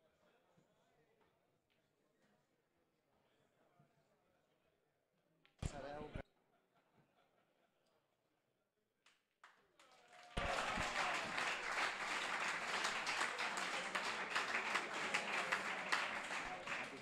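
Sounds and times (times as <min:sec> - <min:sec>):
audience applause: 0:09.8 - 0:17.0
voices in crowd: 0:10.4 - 0:17.0.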